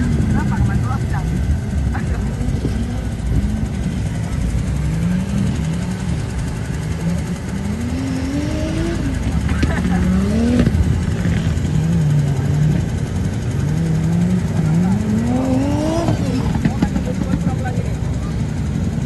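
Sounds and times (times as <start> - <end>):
off-road vehicle engine revving: 0.0 - 19.0.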